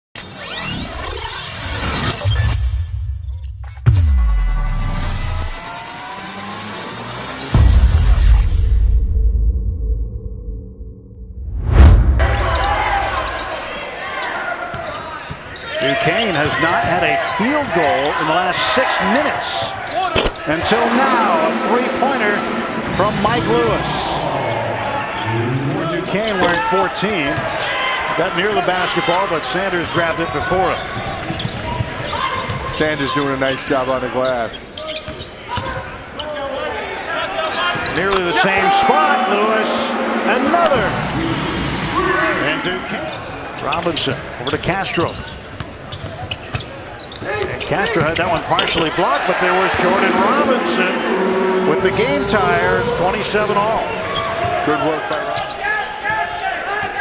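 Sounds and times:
crowd voices echoing in a gym: 5.1 - 7.6, 12.2 - 57.0
transition whoosh: 7.4 - 13.6, 38.9 - 42.4, 49.7 - 53.5.

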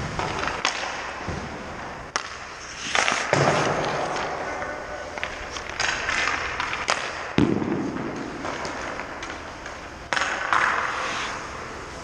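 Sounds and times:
skate blades scraping on ice: 0.0 - 12.0
stick cracking on puck: 0.2 - 1.2, 2.1 - 11.0
loud echoing thud: 7.3 - 8.5.

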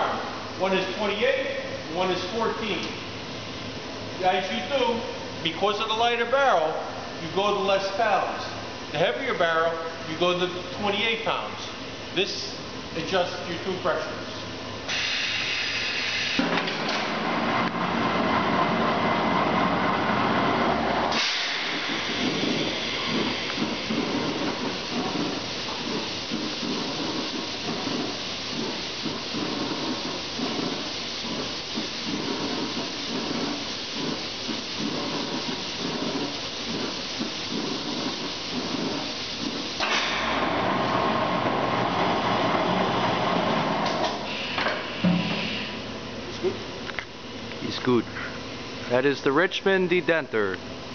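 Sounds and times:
compressed air hissing: 14.9 - 17.2, 20.2 - 45.9
machine rattling rumble: 16.4 - 44.3.

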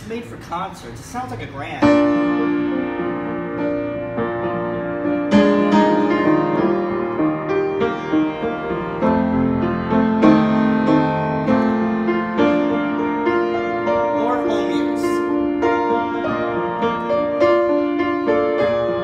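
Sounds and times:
piano chords: 1.6 - 19.0.

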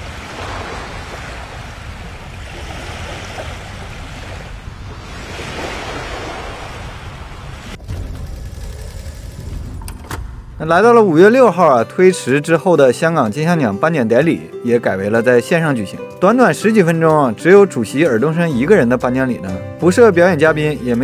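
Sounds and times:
ocean waves washing in: 0.0 - 9.8.

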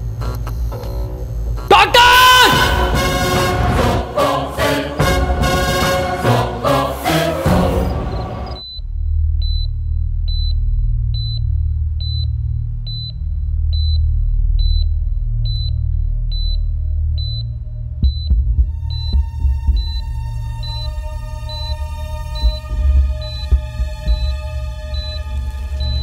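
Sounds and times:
sustained score tones: 1.6 - 8.7
loud music: 1.7 - 8.6
patient monitor beeping: 7.8 - 8.8, 19.8 - 26.0.

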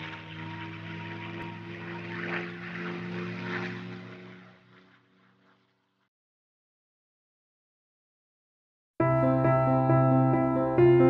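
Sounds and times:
propeller aircraft engines droning: 0.0 - 6.1.

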